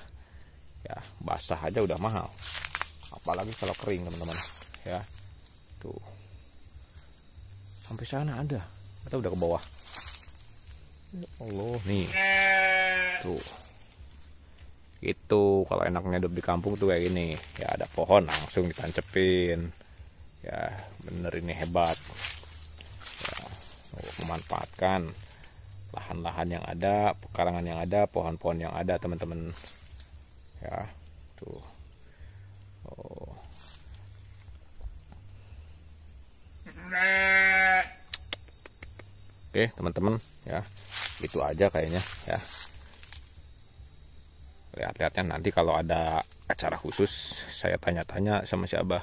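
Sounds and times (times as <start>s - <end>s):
thin high steady tone: 0.0s - 49.0s
goat bleating: 11.9s - 13.4s, 36.7s - 38.0s.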